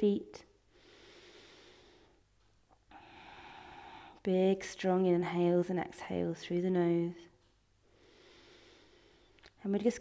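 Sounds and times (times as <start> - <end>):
person breathing through nose: 0.7 - 2.2, 2.9 - 4.2, 7.9 - 9.3.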